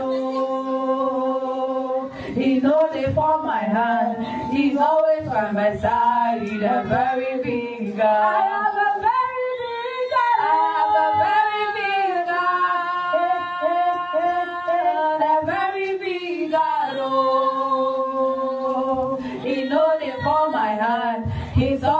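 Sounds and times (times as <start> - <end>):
woman singing unaccompanied: 0.0 - 21.9.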